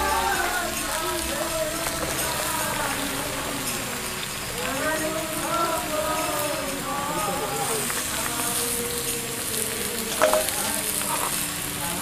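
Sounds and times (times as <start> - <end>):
vegetables sizzling in a pan: 0.0 - 12.0
sharp metal clank: 10.2 - 10.6.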